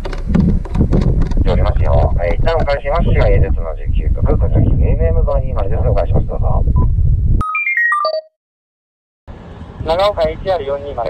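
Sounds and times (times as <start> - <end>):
voice through radio speaker: 1.4 - 6.8
electronic beeps: 6.8 - 8.3.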